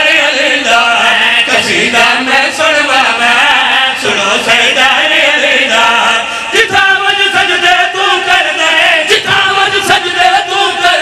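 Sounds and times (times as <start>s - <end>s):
men chanting into microphones: 0.0s - 11.0s.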